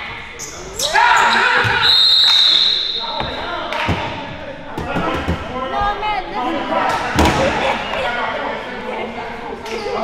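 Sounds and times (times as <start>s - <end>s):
players' voices: 0.0s - 10.0s
referee's whistle: 0.8s - 3.3s.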